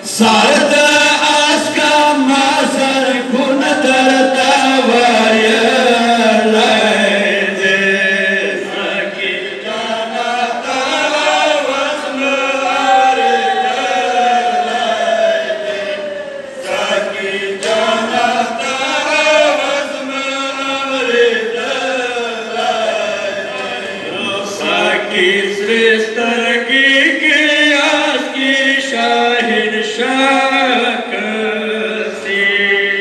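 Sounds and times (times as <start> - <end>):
men chanting a lament: 0.0 - 33.0.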